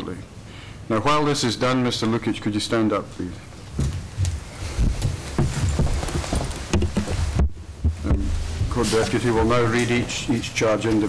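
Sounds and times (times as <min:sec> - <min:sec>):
rustling: 0:03.6 - 0:11.0
dull thumps and knocks: 0:03.8 - 0:09.6.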